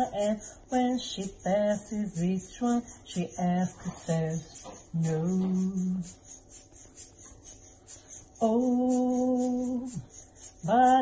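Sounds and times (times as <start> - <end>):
person singing bossa nova: 0.0 - 6.4, 8.4 - 11.0
shaker rhythm: 0.0 - 11.0.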